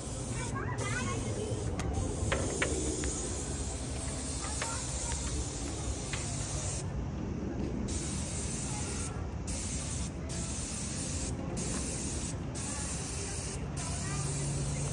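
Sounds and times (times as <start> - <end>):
paint spray gun hissing: 0.0 - 6.9, 7.9 - 14.9.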